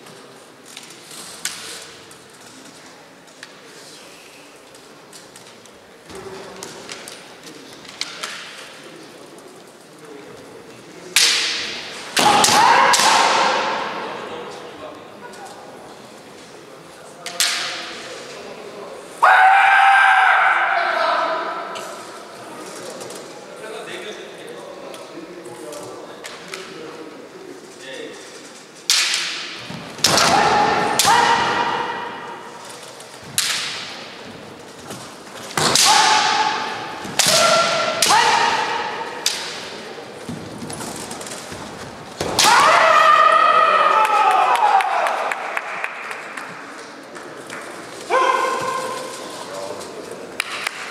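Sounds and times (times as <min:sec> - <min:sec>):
fighters yelling: 0:19.2 - 0:21.8, 0:30.1 - 0:32.4, 0:35.7 - 0:39.2, 0:42.4 - 0:45.2
bamboo swords cracking on armour: 0:35.5 - 0:39.7.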